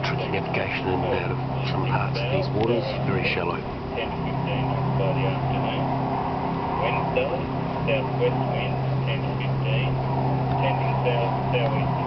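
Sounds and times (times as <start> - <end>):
boat engine humming: 0.0 - 12.0.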